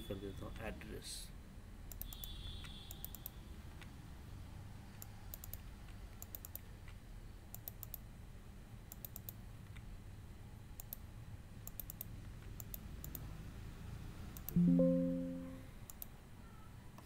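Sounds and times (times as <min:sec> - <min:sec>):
faint low hum: 0:02.9 - 0:17.0
computer keyboard typing: 0:04.9 - 0:08.0, 0:11.6 - 0:13.2.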